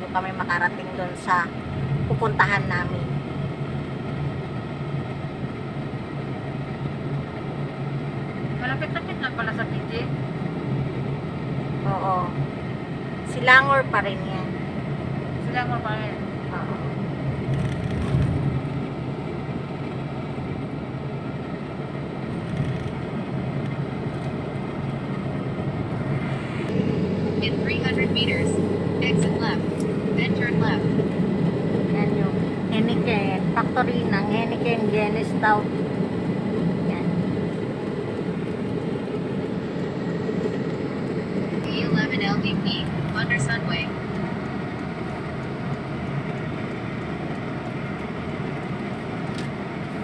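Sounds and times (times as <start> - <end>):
road and engine noise in car: 0.0 - 50.0.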